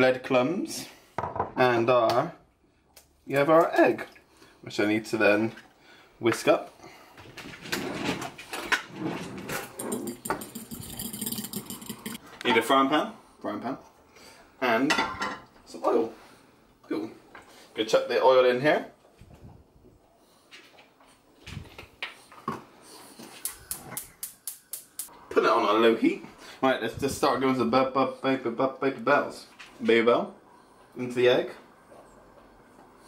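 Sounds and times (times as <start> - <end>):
fork whisking in ceramic bowl: 9.6 - 12.2.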